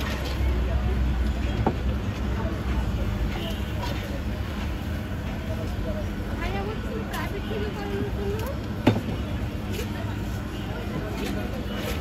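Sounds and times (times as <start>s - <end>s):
faint background voices: 0.0s - 12.0s
street noise rumble: 0.0s - 12.0s.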